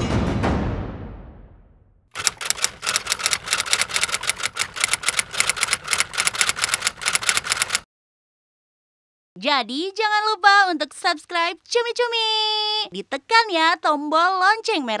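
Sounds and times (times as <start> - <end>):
typewriter key clacks: 2.2 - 7.8.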